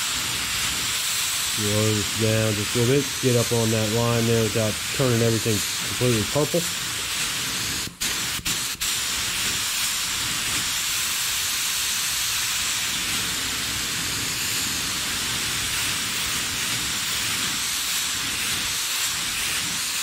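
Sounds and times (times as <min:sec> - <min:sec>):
paint spray gun hissing: 0:00.0 - 0:20.0.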